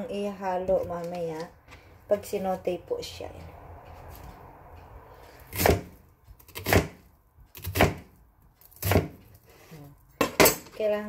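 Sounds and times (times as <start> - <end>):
knife slicing onion on board: 5.2 - 9.7.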